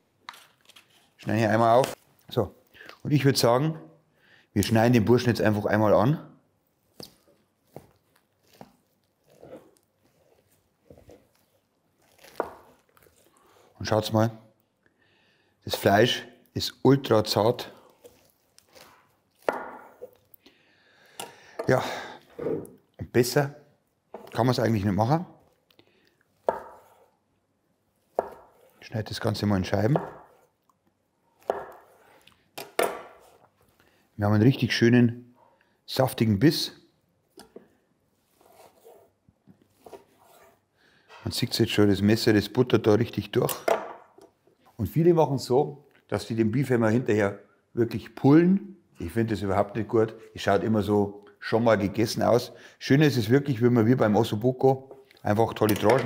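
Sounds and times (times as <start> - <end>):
knife crunching through meat: 8.3 - 13.6.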